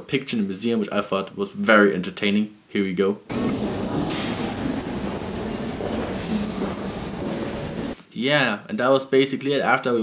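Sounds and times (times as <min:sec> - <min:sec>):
low rumbling hall noise: 0:03.3 - 0:08.0.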